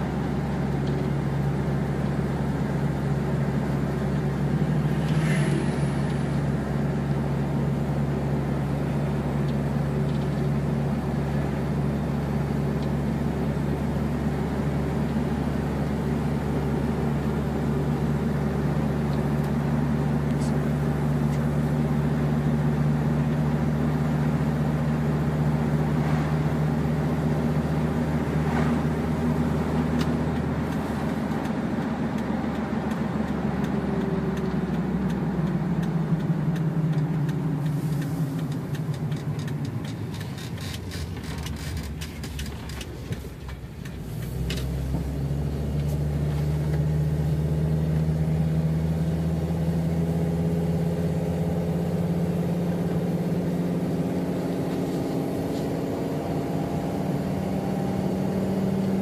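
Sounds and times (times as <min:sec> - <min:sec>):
car engine: 0:00.0 - 0:59.0
road noise inside car: 0:00.0 - 0:59.0
sharp clicks: 0:29.9 - 0:44.7.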